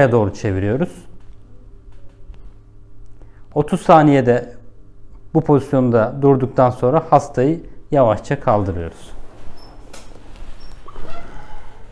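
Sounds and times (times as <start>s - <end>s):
high squeaks: 10.5s - 11.9s.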